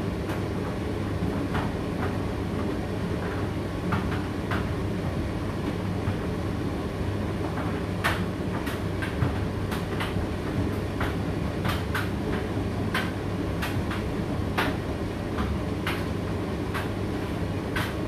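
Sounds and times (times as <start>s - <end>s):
tumble dryer humming and rumbling: 0.0s - 18.0s
clicks and taps of tumbling load: 7.4s - 18.0s.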